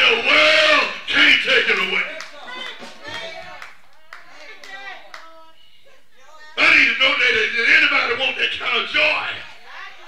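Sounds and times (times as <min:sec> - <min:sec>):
person preaching: 0:00.0 - 0:02.7, 0:04.4 - 0:10.0
voices calling out: 0:00.0 - 0:10.0
hand claps: 0:01.8 - 0:05.3.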